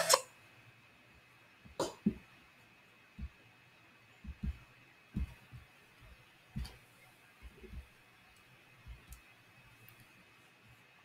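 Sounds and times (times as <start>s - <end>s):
microphone handling thumps: 4.2s - 4.6s.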